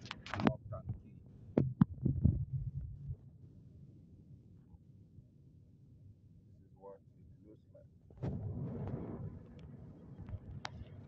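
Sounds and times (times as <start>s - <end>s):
low steady hum: 0.0s - 11.0s
sharp knocks and thumps: 1.6s - 3.0s.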